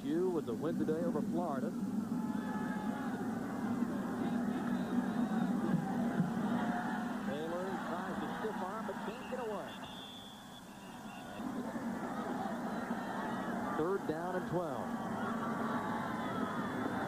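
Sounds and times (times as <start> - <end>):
stadium crowd roar: 1.7 - 17.0.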